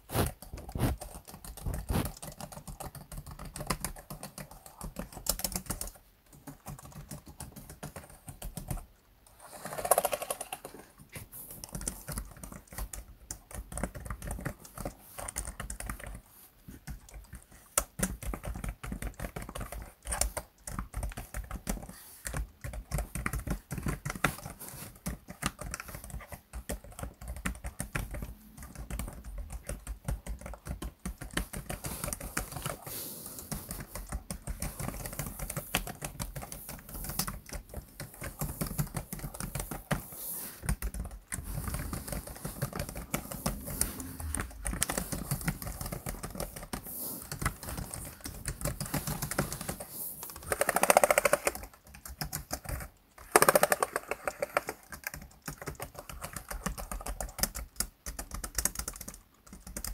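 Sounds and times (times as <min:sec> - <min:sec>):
fast typing on laptop keyboard: 0:00.0 - 0:59.9.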